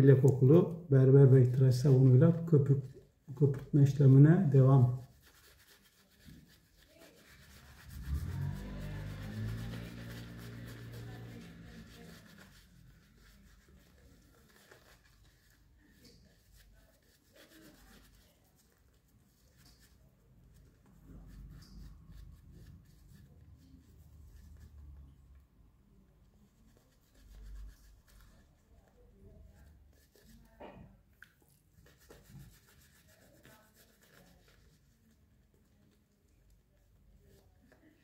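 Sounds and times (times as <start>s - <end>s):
shaving brush scrubbing stubble: 3.6s - 24.8s, 26.6s - 30.6s, 31.3s - 35.9s.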